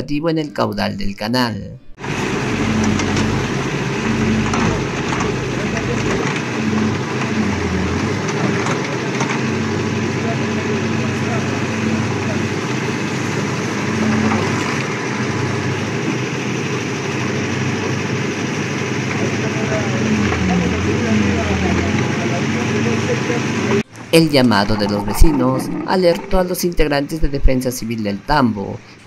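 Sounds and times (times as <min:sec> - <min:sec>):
backhoe diesel engine running: 0:02.0 - 0:29.0.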